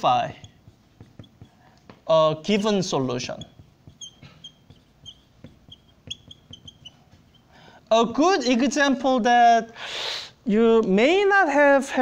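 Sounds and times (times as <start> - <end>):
marker tip tapping: 0.0 - 7.6
marker squeaking on whiteboard: 0.0 - 8.8.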